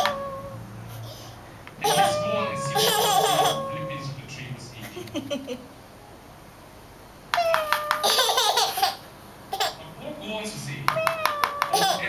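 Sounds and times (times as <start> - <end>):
baby laughing: 1.8 - 4.0, 7.5 - 9.8, 11.0 - 12.0.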